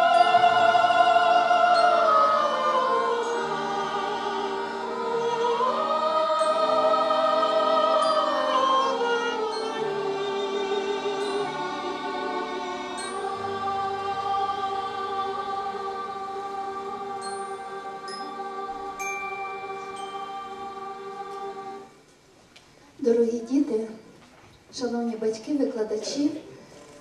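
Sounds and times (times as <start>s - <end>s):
accordion ensemble chords: 0.0s - 22.0s
children's choir singing: 0.0s - 22.1s.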